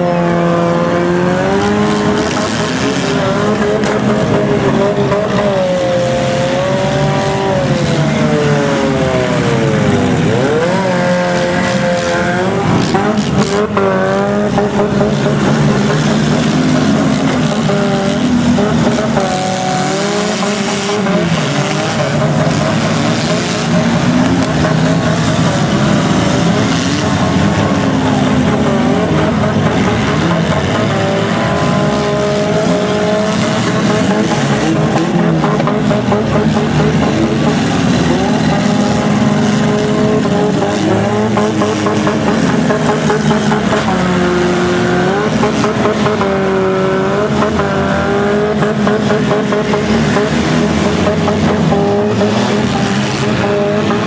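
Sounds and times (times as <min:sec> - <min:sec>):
car engines revving: 0:00.0 - 0:54.0.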